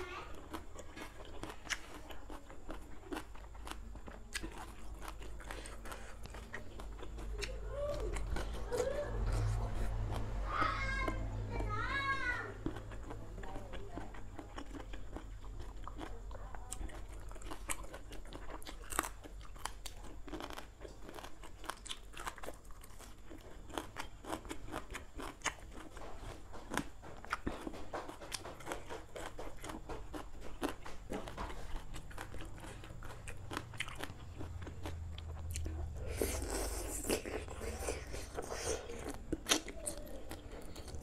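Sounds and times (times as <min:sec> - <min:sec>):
crunching and chewing: 0:00.0 - 0:41.0.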